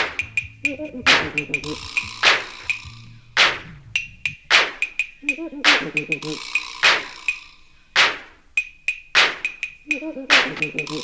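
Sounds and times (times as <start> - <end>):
drum machine hits: 0.0 - 7.2, 9.1 - 11.0.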